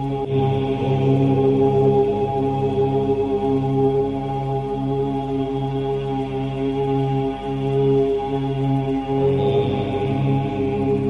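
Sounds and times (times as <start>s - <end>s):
voices chanting a drone: 0.0s - 11.0s.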